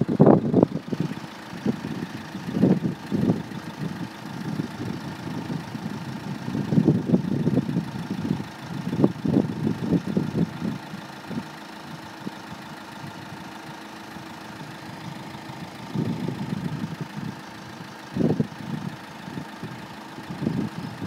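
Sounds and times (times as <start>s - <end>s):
engine idling hum: 0.0s - 21.0s
uneven low rumbling: 0.0s - 21.0s.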